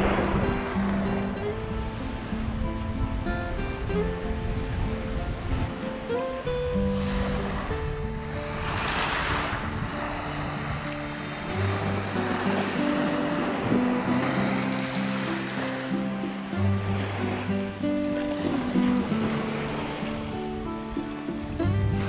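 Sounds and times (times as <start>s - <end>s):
waves washing onto pebbles: 0.0s - 22.0s.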